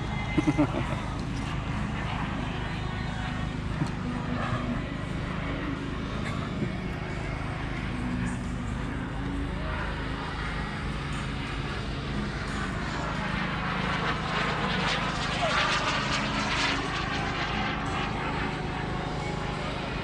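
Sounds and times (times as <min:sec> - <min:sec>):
model jet turbine whine: 0:00.0 - 0:20.0
steady low hum: 0:00.0 - 0:20.0.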